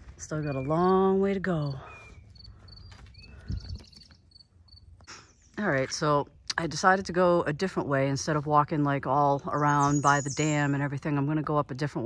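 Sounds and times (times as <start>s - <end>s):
soft low thumps: 1.8s - 4.1s.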